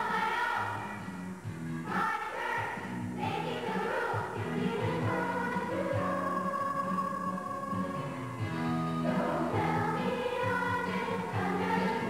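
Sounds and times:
girls' choir singing: 0.0 - 1.0, 1.8 - 12.0.

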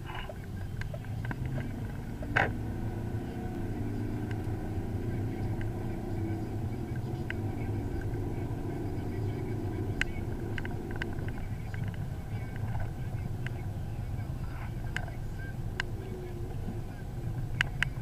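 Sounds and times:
diesel engine accelerating: 0.0 - 18.0.

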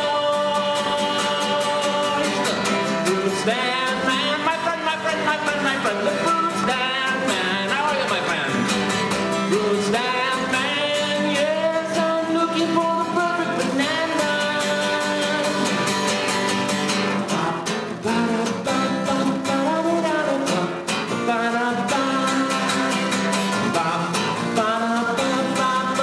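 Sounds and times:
acoustic guitar strumming: 0.0 - 26.0
man singing: 0.0 - 26.0.

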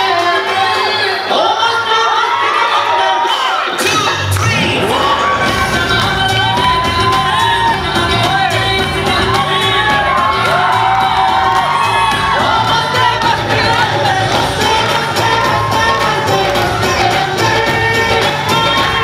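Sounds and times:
dance remix with sung vocals: 0.0 - 19.0
crowd cheering and whooping: 0.4 - 19.0.

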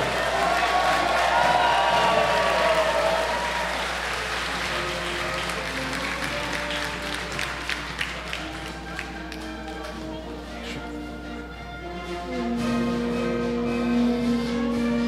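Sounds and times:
audience applauding: 0.0 - 10.8
music playing: 0.0 - 15.0.

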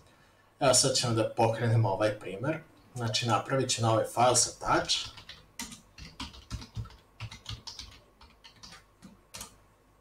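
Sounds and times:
typing on computer keyboard: 4.9 - 9.6.

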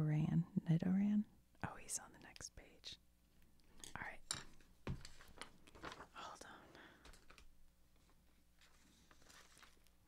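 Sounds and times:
person whispering: 1.6 - 3.0, 3.8 - 4.3, 6.1 - 6.8.

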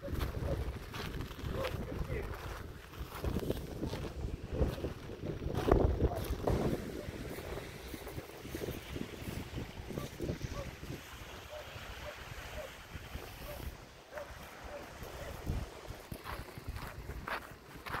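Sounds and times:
footsteps on shingle: 0.0 - 11.1, 13.6 - 18.0
wind buffeting microphone: 0.0 - 18.0.

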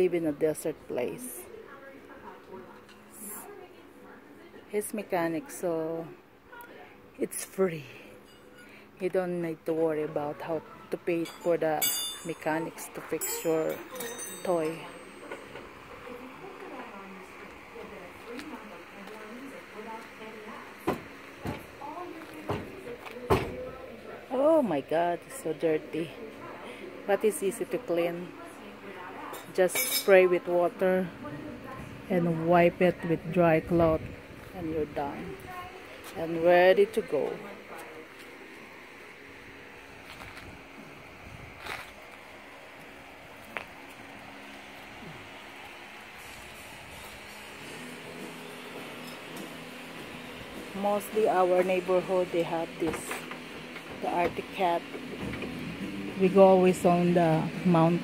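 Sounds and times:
low background hum: 0.0 - 58.0
faint background voices: 9.9 - 33.0.

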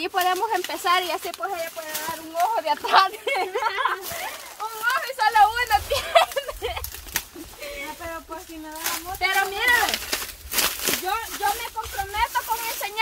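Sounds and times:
woman talking: 0.0 - 6.4, 7.6 - 10.0, 11.0 - 13.0
dry leaves crackling underfoot: 0.0 - 13.0.

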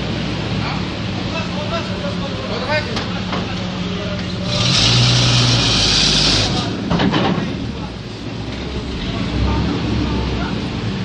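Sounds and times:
truck engine driving past: 4.0 - 6.9
loud hiss: 4.4 - 6.7.

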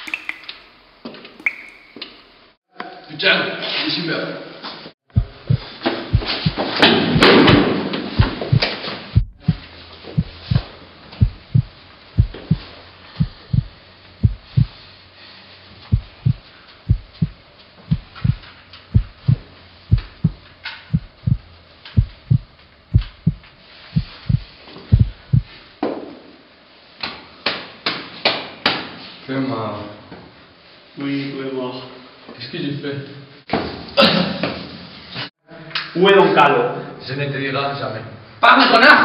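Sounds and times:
heartbeat thuds: 5.1 - 14.8, 15.9 - 25.6.

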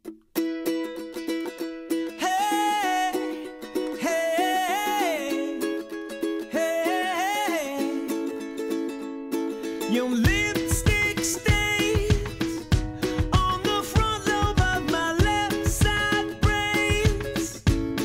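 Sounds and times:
plucked strings: 0.0 - 18.0
sliding melody line: 0.4 - 18.0.

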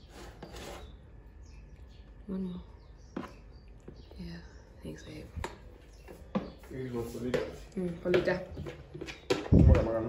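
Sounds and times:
metal spoon scraping plastic container: 0.0 - 1.1.

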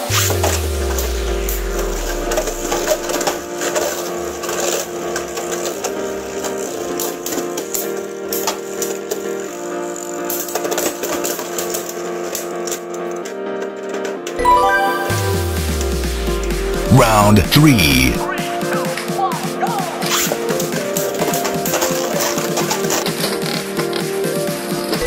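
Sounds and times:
background music: 0.0 - 9.6, 14.4 - 25.0.

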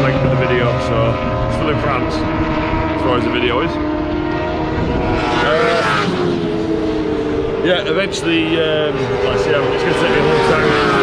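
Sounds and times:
vehicle engine passing by: 0.0 - 11.0.

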